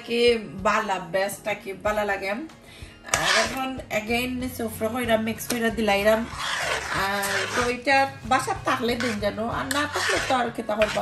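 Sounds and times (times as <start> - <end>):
metal spoon scraping pot: 3.1 - 3.8, 5.4 - 11.0.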